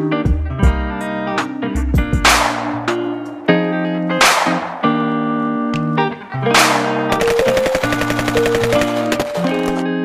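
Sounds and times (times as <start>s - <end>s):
background music with held notes: 0.0s - 10.0s
machine-gun fire: 6.6s - 9.9s.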